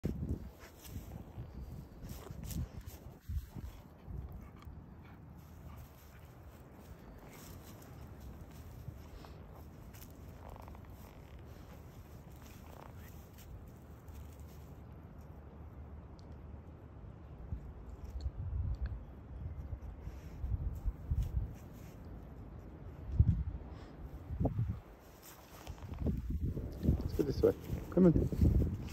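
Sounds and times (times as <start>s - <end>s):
dog sniffing grass: 0.2s - 14.8s.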